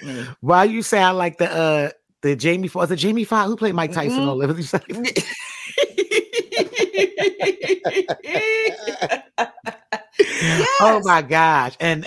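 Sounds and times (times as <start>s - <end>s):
woman laughing: 4.0s - 11.1s
woman coughing: 8.0s - 9.3s.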